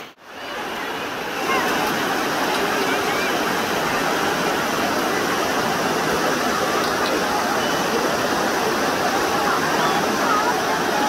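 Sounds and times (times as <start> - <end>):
river water rushing over stones: 0.0 - 11.0.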